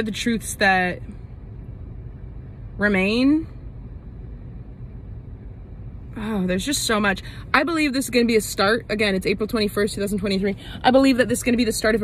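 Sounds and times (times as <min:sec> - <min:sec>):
car rumble from inside cabin: 0:00.0 - 0:12.0.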